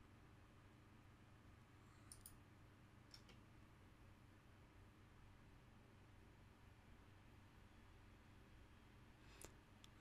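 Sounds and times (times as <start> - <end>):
computer mouse clicks: 2.0 - 2.4, 3.1 - 3.4.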